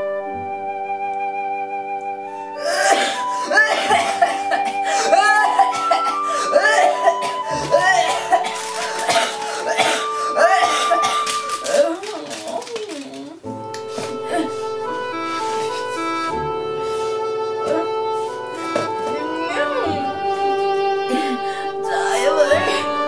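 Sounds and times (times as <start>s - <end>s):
light instrumental music: 0.0s - 23.0s
girl making sick noises: 6.5s - 9.1s, 21.8s - 22.8s.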